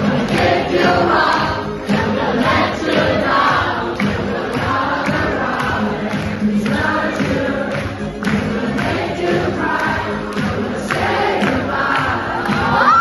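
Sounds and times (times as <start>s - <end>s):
crowd singing and chanting: 0.0s - 13.0s
loud music with steady beat: 0.0s - 13.0s.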